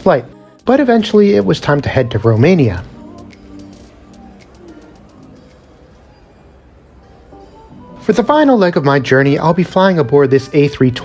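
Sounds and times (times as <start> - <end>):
indistinct background noise: 2.0 - 9.8.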